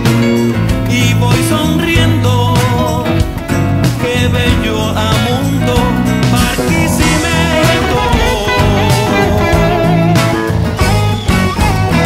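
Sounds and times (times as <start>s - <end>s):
bass: 0.0s - 12.0s
drum kit: 0.0s - 12.0s
electric guitar lead melody: 0.0s - 12.0s
keyboards: 0.0s - 12.0s.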